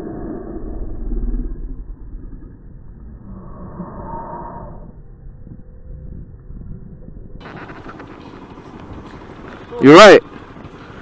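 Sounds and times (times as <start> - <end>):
wind rush: 0.0 - 11.0
motorcycle engine rumble: 7.4 - 11.0.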